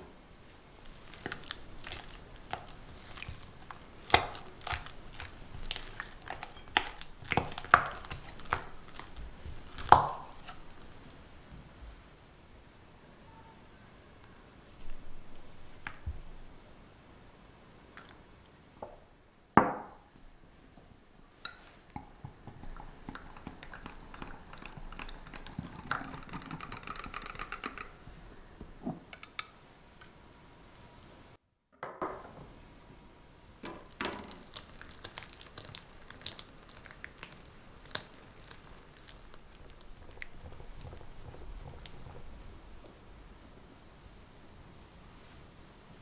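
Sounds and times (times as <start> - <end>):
spatula stirring cream cheese: 0.8 - 11.1, 21.5 - 28.0, 34.5 - 42.7.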